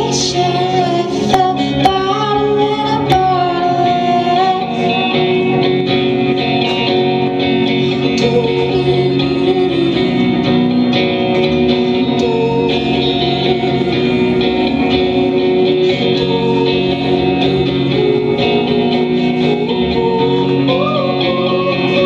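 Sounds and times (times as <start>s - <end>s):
woman singing: 0.0s - 6.5s, 7.8s - 22.0s
amplified electric guitar: 0.0s - 22.0s.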